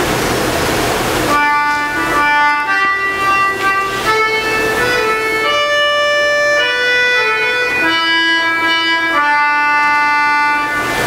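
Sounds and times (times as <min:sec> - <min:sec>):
organ music: 0:01.3 - 0:11.0.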